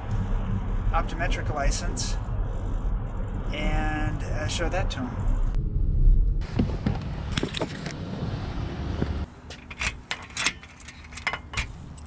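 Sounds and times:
keys jangling in door lock: 9.6s - 12.0s.

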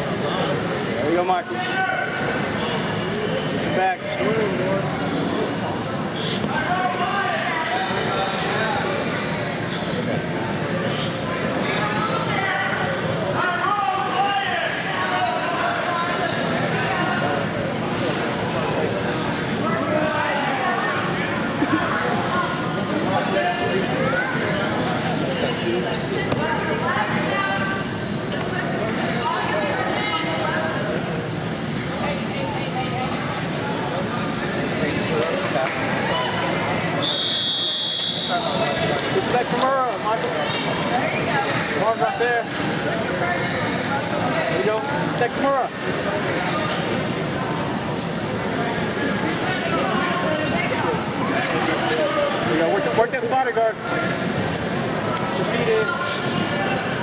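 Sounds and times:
crowd chatter and calls: 0.0s - 57.0s.

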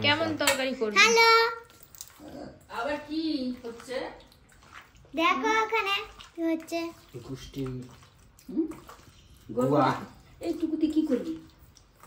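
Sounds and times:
hands kneading wet chicken: 1.6s - 12.0s.

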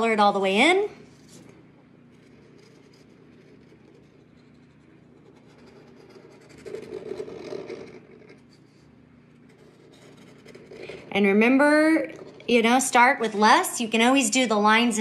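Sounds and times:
pen scratching on paper: 2.1s - 13.7s.

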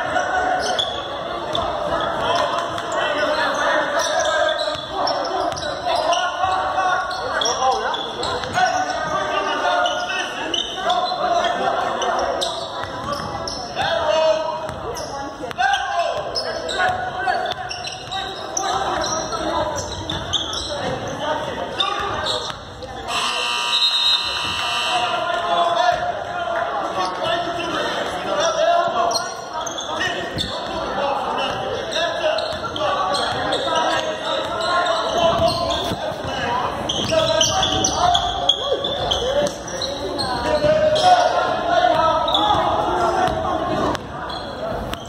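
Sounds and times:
players and spectators voices: 0.0s - 45.0s.

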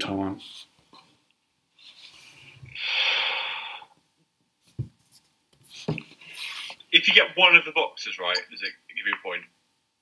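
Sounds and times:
breathy exhale: 2.7s - 4.0s.

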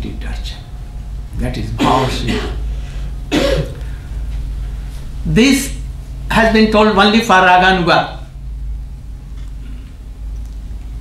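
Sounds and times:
steady low hum: 0.0s - 11.0s
man speaking: 1.4s - 2.6s, 5.2s - 8.3s
old man coughing: 1.8s - 2.7s, 3.3s - 3.8s.

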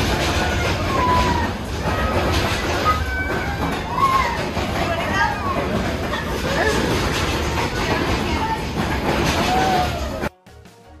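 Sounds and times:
faint voices: 0.0s - 10.3s
rotating drum rumble: 0.0s - 10.3s.

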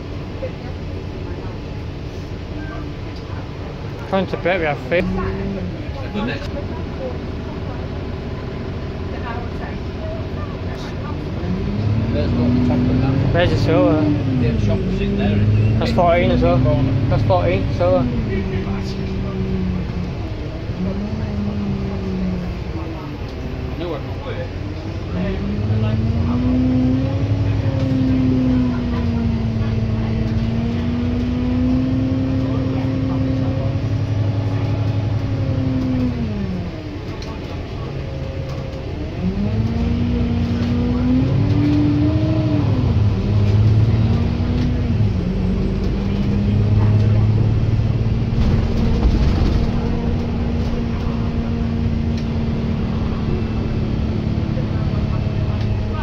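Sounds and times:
bus engine hum: 0.0s - 56.0s
gear changes: 10.7s - 56.0s.

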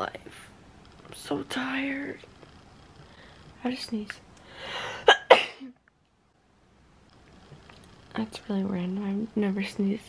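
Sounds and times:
woman sneezing: 4.9s - 5.7s.

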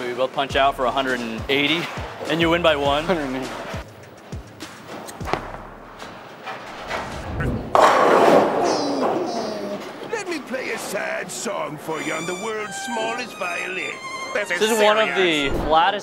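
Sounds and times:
music: 0.0s - 7.7s, 11.5s - 16.0s
bowling pins clattering: 5.2s - 11.0s
bowling ball rolling: 6.6s - 10.0s
cartoon voices: 8.6s - 10.0s.

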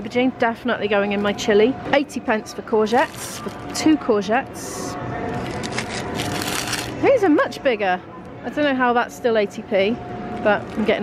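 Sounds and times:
plastic wrapping crinkling: 2.9s - 3.8s, 5.3s - 7.0s.

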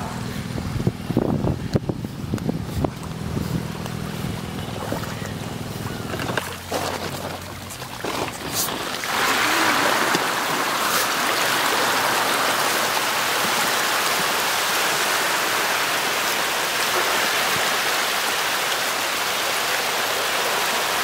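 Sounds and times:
fish splashing water: 3.8s - 21.0s.

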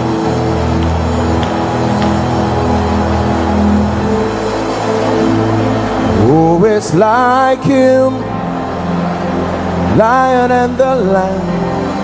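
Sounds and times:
held keyboard chords: 0.0s - 12.0s.

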